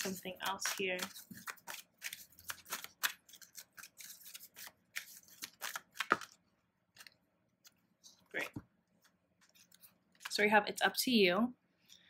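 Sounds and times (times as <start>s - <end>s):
cards being shuffled: 0.0s - 10.4s.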